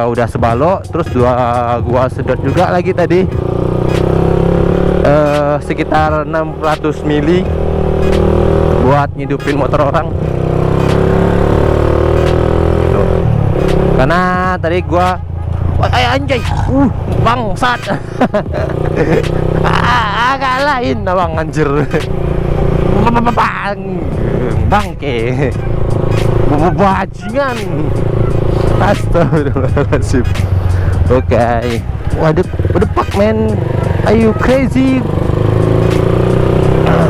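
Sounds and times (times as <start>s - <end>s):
motorcycle engine running: 0.0s - 37.0s
person talking: 5.0s - 7.5s, 15.8s - 22.1s, 22.9s - 25.6s, 26.5s - 28.0s, 28.7s - 35.1s.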